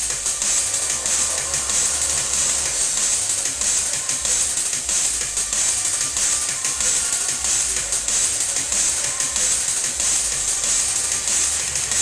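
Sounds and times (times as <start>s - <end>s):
drum and bass music: 0.0s - 12.0s.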